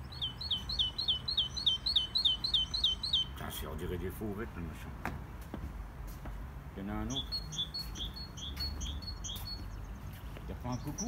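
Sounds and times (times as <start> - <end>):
recorded birdsong from loudspeaker: 0.0 - 4.2, 6.8 - 11.0.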